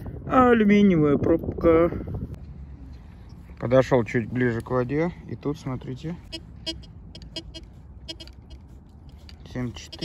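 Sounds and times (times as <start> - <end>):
metal detector beeps: 6.3 - 8.8, 9.6 - 10.0.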